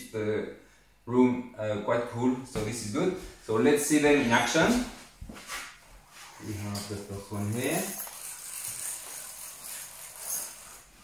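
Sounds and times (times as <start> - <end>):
bead chain rattling: 6.8 - 11.0.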